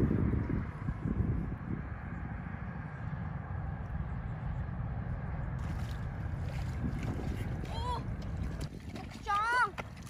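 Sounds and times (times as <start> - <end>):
wind rumbling on microphone: 0.0 - 10.0
wading through muddy water: 5.0 - 10.0.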